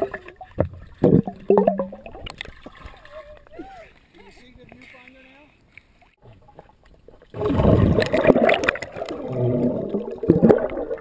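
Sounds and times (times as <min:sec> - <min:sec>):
underwater splashing and bubbling: 0:00.0 - 0:04.1, 0:06.2 - 0:11.0.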